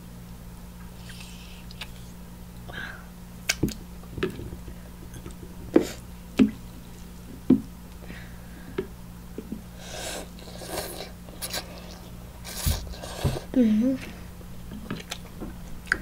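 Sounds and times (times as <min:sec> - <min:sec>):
steady low hum: 0:00.0 - 0:16.0
mouth clicks and smacks: 0:01.0 - 0:02.0, 0:03.4 - 0:04.7.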